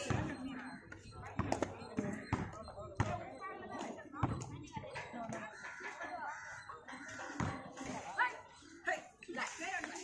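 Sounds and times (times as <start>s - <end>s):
voices of players and onlookers: 0.0s - 10.0s.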